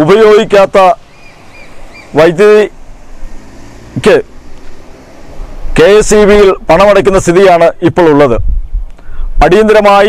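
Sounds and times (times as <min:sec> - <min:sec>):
man speaking into a microphone: 0:00.0 - 0:01.0, 0:02.1 - 0:02.8, 0:03.9 - 0:04.3, 0:05.7 - 0:08.5, 0:09.3 - 0:10.0.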